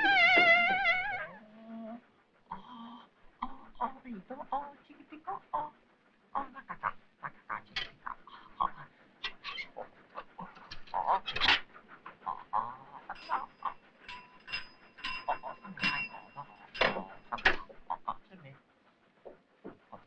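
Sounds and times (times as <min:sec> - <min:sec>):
pony eating noises: 0:01.4 - 0:20.0.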